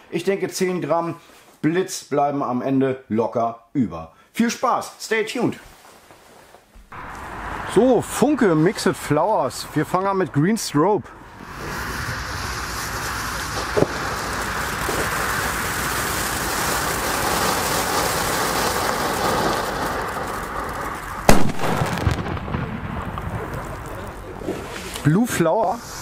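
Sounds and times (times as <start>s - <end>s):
firework fountain hissing: 6.9s - 9.8s, 11.2s - 26.0s
loud sharp firecracker bang: 11.4s - 20.3s, 21.2s - 24.9s.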